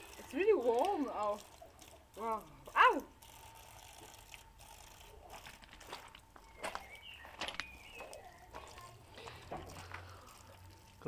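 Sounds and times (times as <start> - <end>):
water trickling onto gravel: 0.0 - 11.0.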